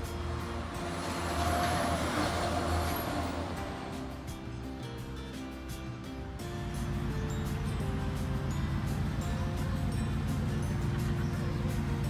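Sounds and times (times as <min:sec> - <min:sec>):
vehicle passing: 0:00.0 - 0:04.7.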